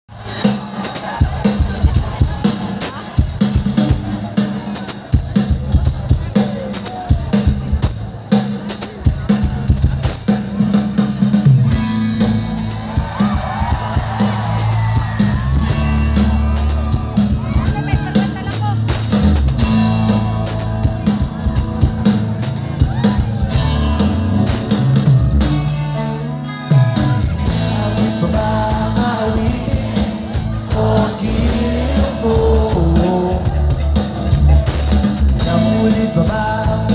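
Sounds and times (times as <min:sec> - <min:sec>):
bass guitar: 0:00.1 - 0:36.9
electric guitars: 0:00.1 - 0:36.9
live rock band: 0:00.1 - 0:36.9.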